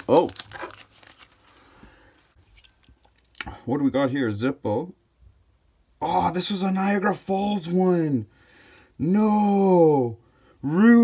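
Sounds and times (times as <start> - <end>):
bubble wrap crinkling: 0.0 - 3.4.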